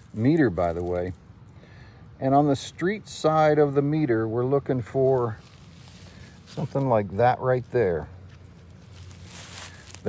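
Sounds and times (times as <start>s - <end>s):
soft rustle: 0.0s - 1.2s, 5.0s - 7.0s, 7.6s - 10.0s.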